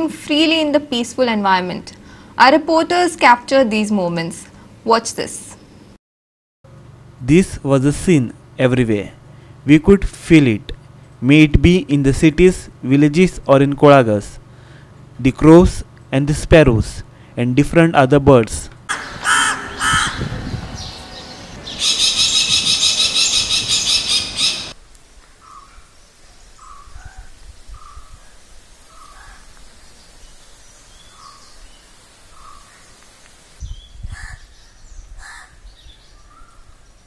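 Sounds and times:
crows cawing: 18.9 - 20.5, 25.4 - 25.8, 26.6 - 28.1, 28.9 - 29.5, 32.3 - 32.8, 34.1 - 34.5, 35.2 - 35.6
small birds chirping: 19.0 - 24.8, 25.4 - 37.0.

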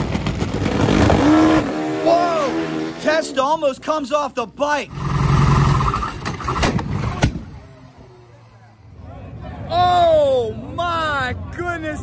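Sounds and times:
motorcycle engine drone: 0.0 - 3.6, 4.9 - 10.0.

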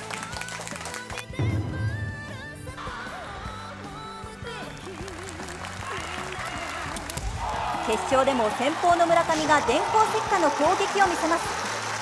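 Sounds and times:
spectators applauding: 0.0 - 1.4, 4.5 - 12.0.

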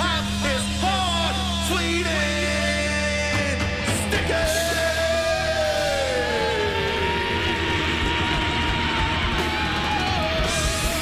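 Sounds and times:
rock band playing live: 0.0 - 11.0.

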